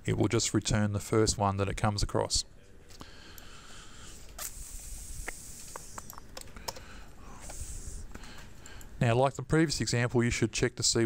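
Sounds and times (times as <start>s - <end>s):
faint steady hiss: 0.0s - 11.0s
keyboard keystrokes and clicks: 5.7s - 6.9s.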